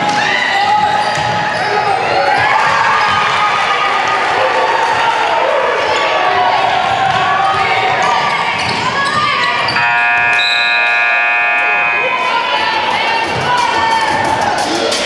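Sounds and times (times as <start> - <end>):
crowd and players shouting: 0.0 - 15.0
scoreboard horn blast: 9.8 - 12.4.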